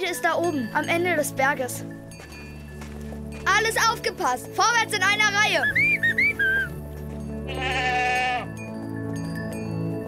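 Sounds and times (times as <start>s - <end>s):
background music: 0.0s - 10.0s
person whistling: 5.7s - 6.7s
goat bleating: 7.5s - 8.5s.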